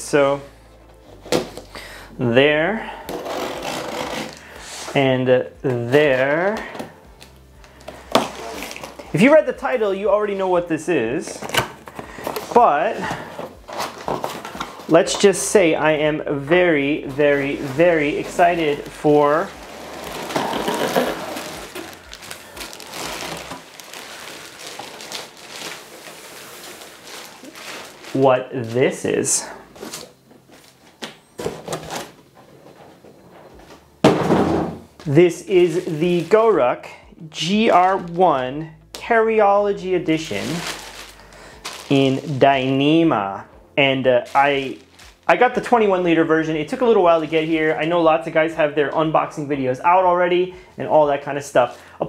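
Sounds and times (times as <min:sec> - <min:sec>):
plastic bag crinkling: 0:07.1 - 0:09.2, 0:16.8 - 0:28.8, 0:35.0 - 0:36.6, 0:37.5 - 0:38.2, 0:40.1 - 0:42.8, 0:44.2 - 0:46.0.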